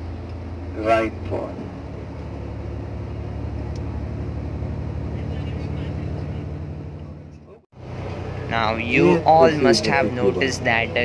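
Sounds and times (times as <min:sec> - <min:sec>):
road noise: 0:00.0 - 0:11.0
vehicle engine drone: 0:00.0 - 0:11.0.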